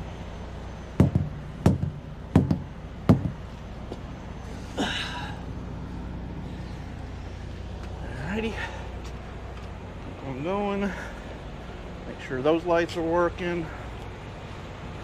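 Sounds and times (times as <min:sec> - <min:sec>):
truck engine idling: 0:00.0 - 0:15.0
thumps on a truck tire: 0:01.0 - 0:03.5.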